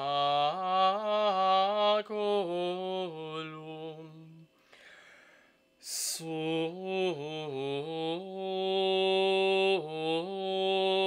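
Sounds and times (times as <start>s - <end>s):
man singing chant: 0.0s - 4.5s, 5.8s - 11.0s.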